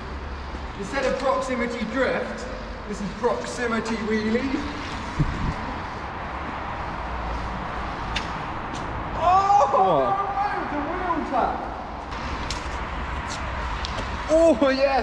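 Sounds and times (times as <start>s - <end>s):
wind on camera: 5.0s - 5.8s
man calling out: 9.2s - 11.7s.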